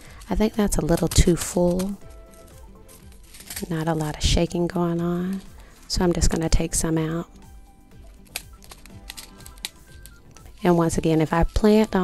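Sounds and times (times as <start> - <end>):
plastic sequins clicking: 0.0 - 7.0, 8.0 - 12.0
faint background music: 0.0 - 12.0.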